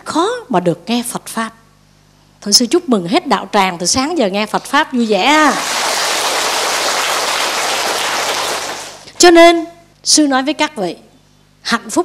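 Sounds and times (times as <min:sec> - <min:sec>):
audience applause: 0:05.6 - 0:09.1.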